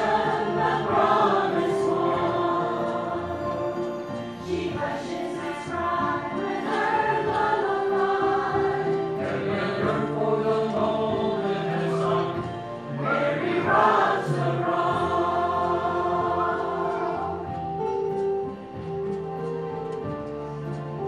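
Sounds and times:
mixed choir singing: 0.0 - 18.2.

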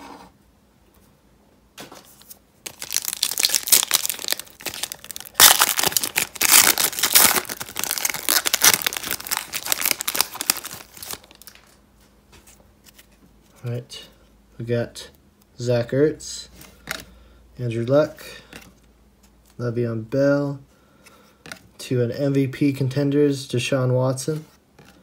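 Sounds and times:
foil wrapper tearing and crinkling: 2.7 - 11.7.

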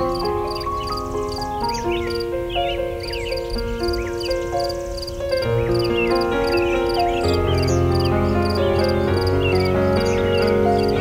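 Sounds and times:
bird chirps: 0.0 - 11.0
soft piano music: 0.0 - 11.0.

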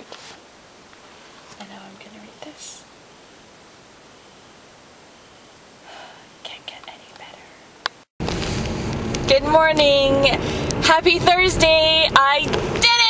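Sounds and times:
room hiss: 0.0 - 8.9
person whispering: 6.0 - 7.6
car interior rumble: 8.2 - 13.0.

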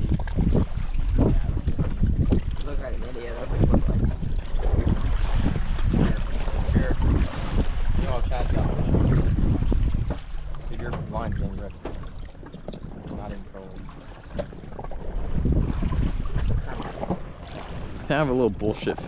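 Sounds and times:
open water: 0.0 - 19.0
wind buffeting microphone: 0.0 - 19.0.

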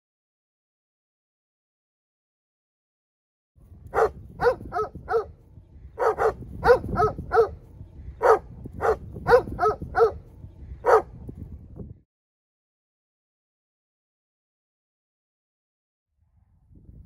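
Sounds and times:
dogs barking: 3.9 - 5.4, 6.0 - 7.6, 8.2 - 11.2.

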